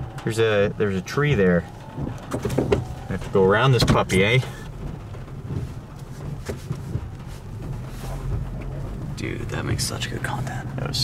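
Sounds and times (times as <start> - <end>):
car engine humming: 0.0 - 11.0
faint knocks: 1.2 - 9.2.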